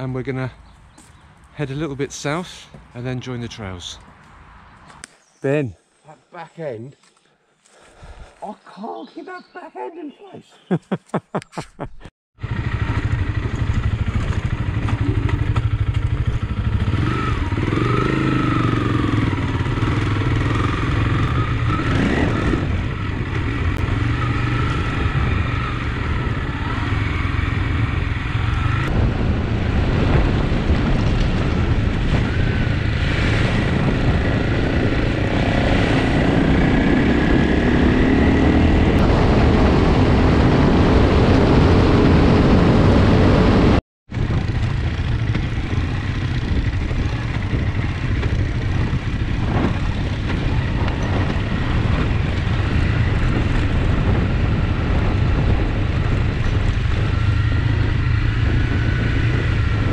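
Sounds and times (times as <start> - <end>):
motorcycle engine running: 12.4 - 59.9
wind noise on microphone: 12.6 - 59.9.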